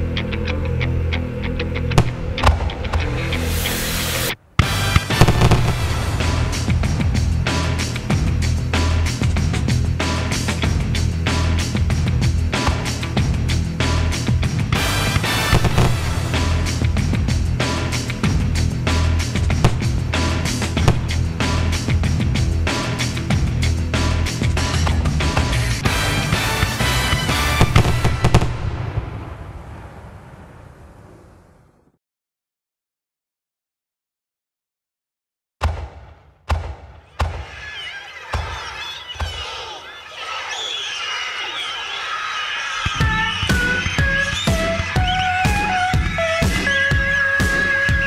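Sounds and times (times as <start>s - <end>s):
fireworks bangs: 4.4s - 7.9s, 14.8s - 16.8s, 25.8s - 31.7s
music with low bass line: 4.6s - 27.9s.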